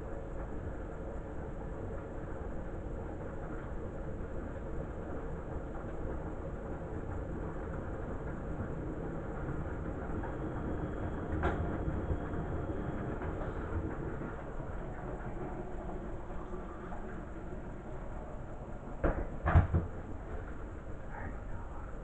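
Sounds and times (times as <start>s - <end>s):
washing machine drum rumbling: 0.1s - 21.3s.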